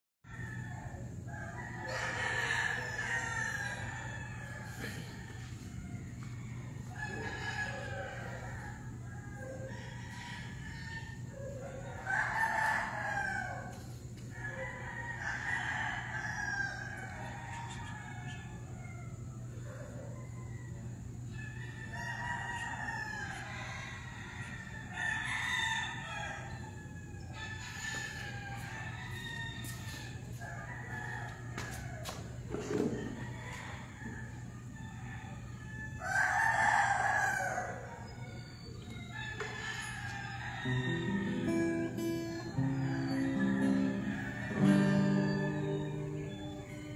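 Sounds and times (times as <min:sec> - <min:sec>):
roosters crowing: 0:00.3 - 0:46.9.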